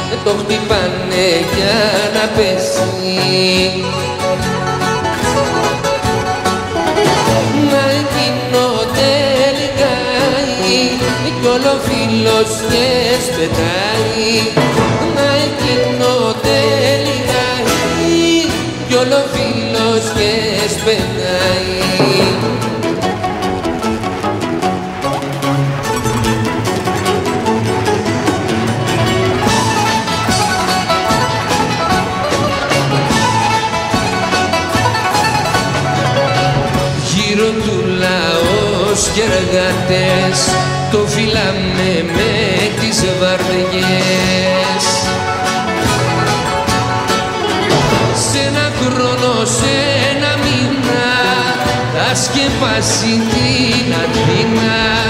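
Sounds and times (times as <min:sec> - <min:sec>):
live band playing instrumental: 0:00.0 - 0:55.0.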